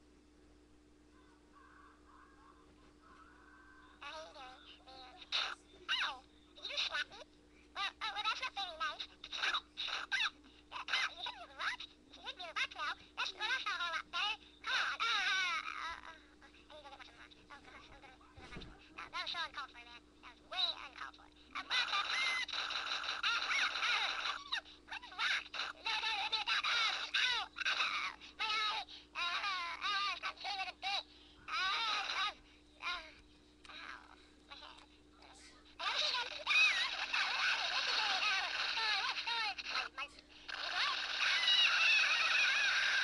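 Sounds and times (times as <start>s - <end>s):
squeaky warbling voice sounds: 7.8s - 11.9s, 20.5s - 30.6s, 31.5s - 33.1s, 35.8s - 43.0s
shrill squawking cartoon screams: 40.6s - 43.0s.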